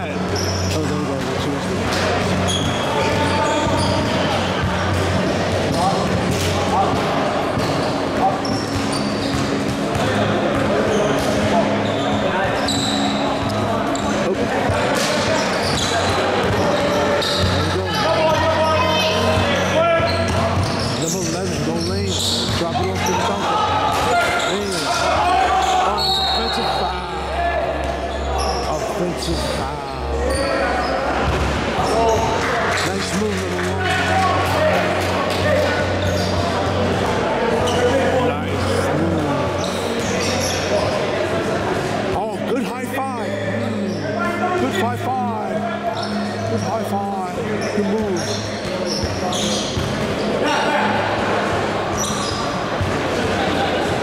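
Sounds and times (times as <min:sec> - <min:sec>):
voices calling out: 0:01.9 - 0:54.0.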